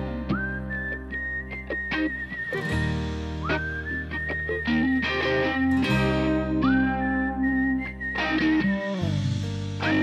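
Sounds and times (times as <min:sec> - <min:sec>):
plucked guitar: 0:00.0 - 0:10.0
soft rock song: 0:00.0 - 0:10.0
whistled melody: 0:00.0 - 0:10.0.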